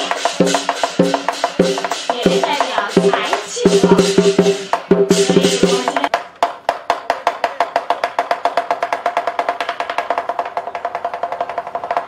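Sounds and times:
fast wooden percussion roll: 0.0s - 12.0s.

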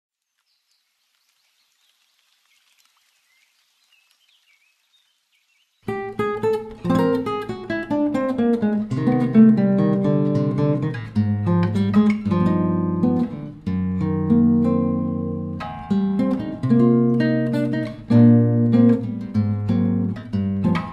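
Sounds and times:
classical guitar playing: 5.8s - 20.9s.

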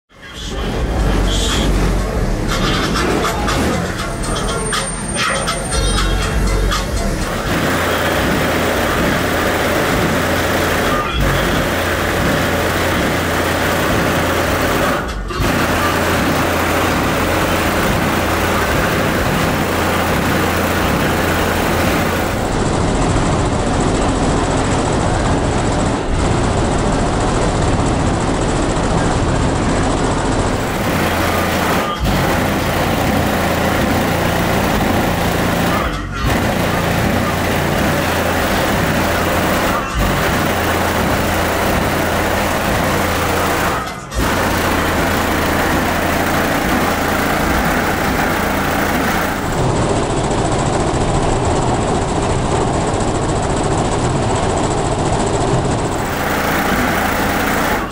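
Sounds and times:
loud car subwoofer bass music: 0.3s - 22.5s, 30.5s - 41.9s.

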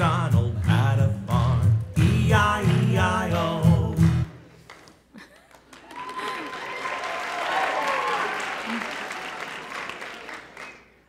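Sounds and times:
audience applauding: 4.6s - 11.0s
voices cheering: 5.8s - 10.4s.

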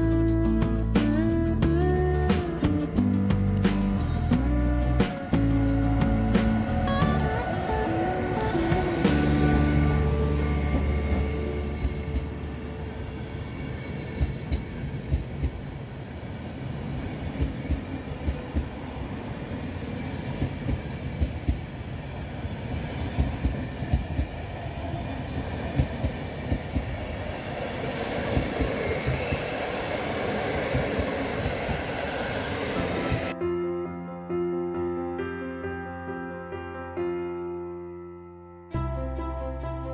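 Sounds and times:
train rumble: 0.0s - 33.4s
train wheels clacking on rail joints: 23.1s - 33.4s.

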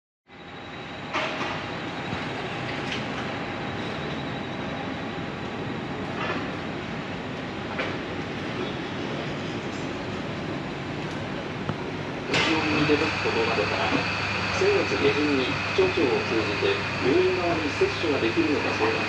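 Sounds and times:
urban street rumble: 0.3s - 19.0s.

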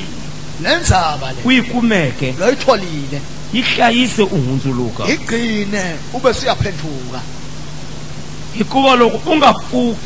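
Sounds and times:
steady hiss with low hum: 0.0s - 10.0s
man speaking over a microphone: 0.6s - 7.3s, 8.6s - 10.0s.

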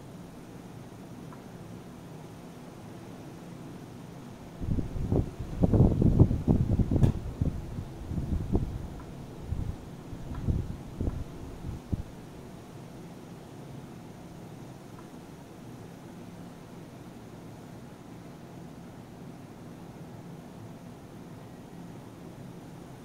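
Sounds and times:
fan-like background hiss: 0.0s - 23.0s.

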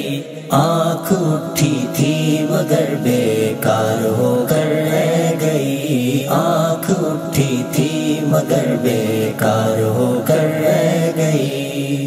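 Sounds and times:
layered voices chanting wordlessly: 0.0s - 12.0s.

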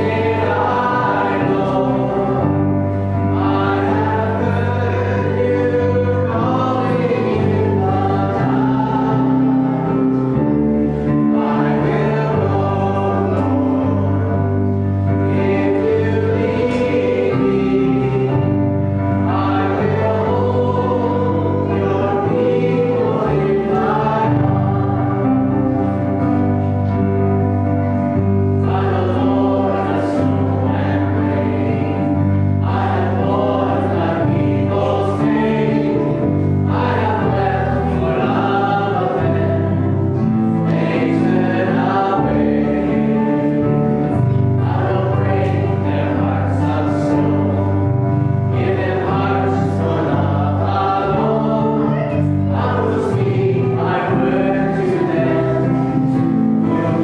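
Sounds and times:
congregation singing a hymn: 0.0s - 57.0s
guitar: 0.0s - 57.0s
keyboard: 0.0s - 57.0s.

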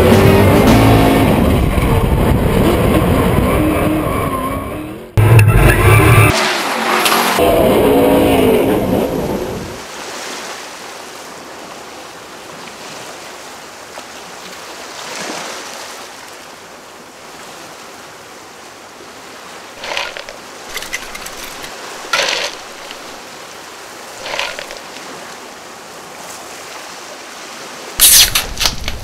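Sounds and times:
tyres squealing: 19.8s - 23.2s
loud burst: 28.0s - 28.7s.

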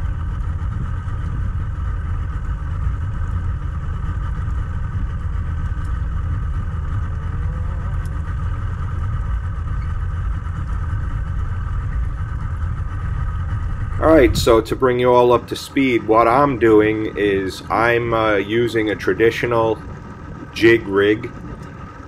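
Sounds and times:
faint steady hum: 0.0s - 22.0s
outboard motor idling: 0.0s - 22.0s.

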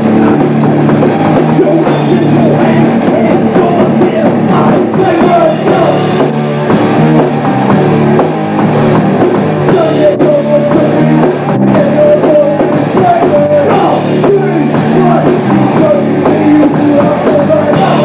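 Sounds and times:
bass guitar: 0.0s - 18.0s
distorted electric guitars: 0.0s - 18.0s
drum kit: 0.0s - 18.0s.

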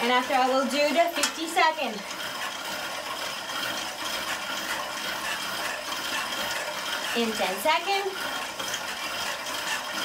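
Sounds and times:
exercise bike flywheel whirring: 0.0s - 10.0s.

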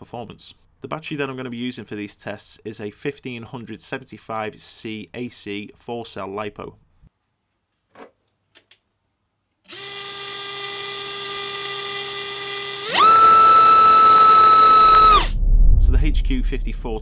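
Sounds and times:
brushless motor whining: 11.9s - 15.3s
low rumble: 14.8s - 17.0s.

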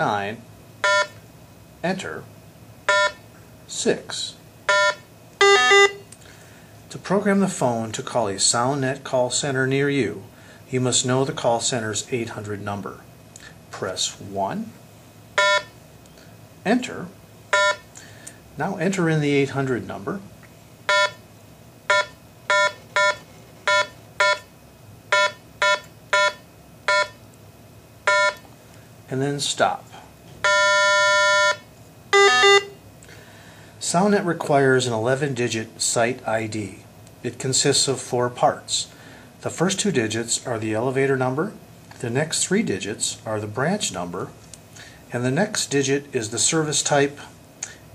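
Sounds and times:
two-pitch electronic beep: 4.7s - 6.0s, 21.9s - 24.5s, 25.1s - 27.2s, 32.2s - 32.8s.

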